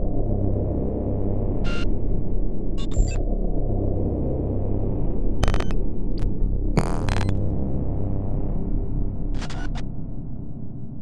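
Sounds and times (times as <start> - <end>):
low droning hum: 0.0 - 11.0
glitchy static bursts: 5.4 - 5.8, 6.8 - 7.4.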